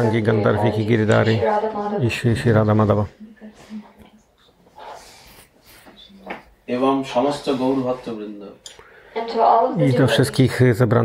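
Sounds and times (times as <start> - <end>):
faint murmured vocal sounds: 0.0 - 6.6
soft breath: 3.4 - 6.2, 7.6 - 9.3.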